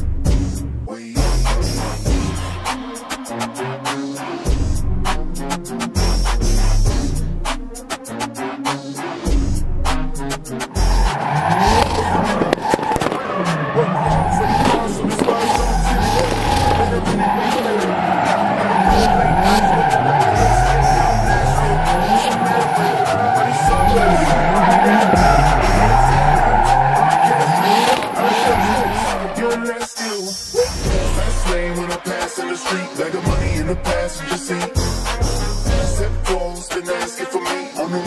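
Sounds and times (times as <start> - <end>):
hip-hop music: 0.0 - 38.0
car engine revving: 9.4 - 29.6
tyres squealing: 10.7 - 29.6.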